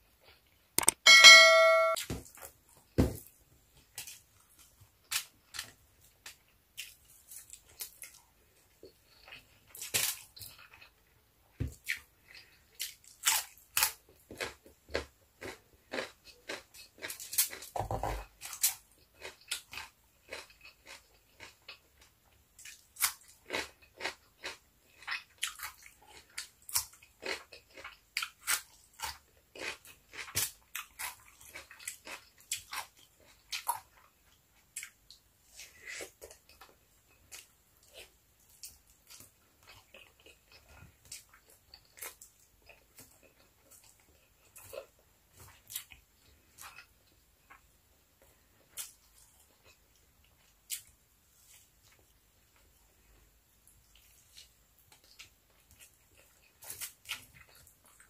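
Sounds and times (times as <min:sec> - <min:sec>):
crunching and chewing: 0:03.9 - 0:58.0.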